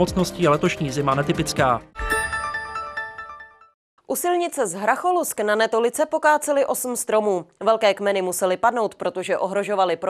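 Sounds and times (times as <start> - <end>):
electronic news sting chord: 1.9 - 3.7.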